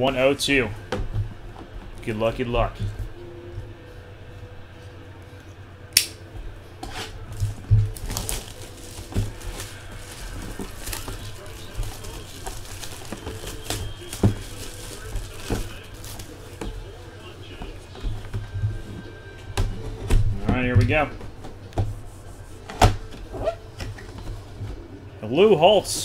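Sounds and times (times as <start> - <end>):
plastic wrap crinkling and tearing: 7.2 - 18.2.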